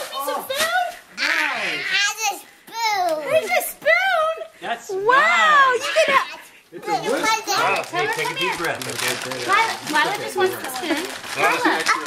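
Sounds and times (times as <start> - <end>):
children chattering and calling out: 0.0 - 4.5, 5.4 - 12.0
adult voices: 0.0 - 12.0.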